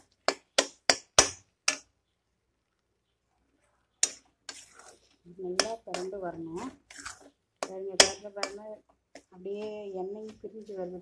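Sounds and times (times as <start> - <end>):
metal spoon knocking metal pan: 0.3 - 1.8, 5.6 - 6.1, 7.6 - 8.6.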